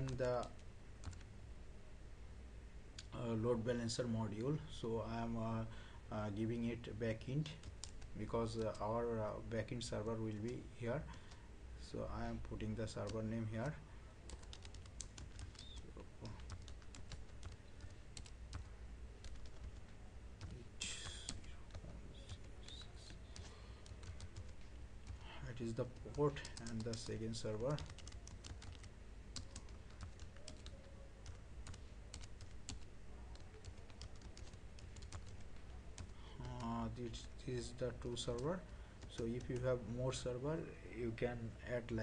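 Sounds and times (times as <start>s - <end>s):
typing on computer keyboard: 0.0s - 1.3s, 7.5s - 8.0s, 13.0s - 25.2s, 25.9s - 36.7s.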